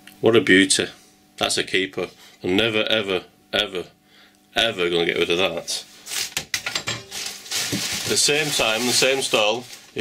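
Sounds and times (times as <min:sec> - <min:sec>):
plastic bag rustling: 0:05.9 - 0:10.0.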